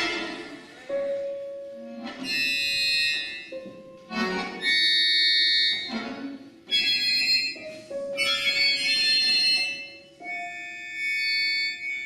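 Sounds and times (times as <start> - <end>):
ensemble with accordions playing chords: 0.0 - 12.0.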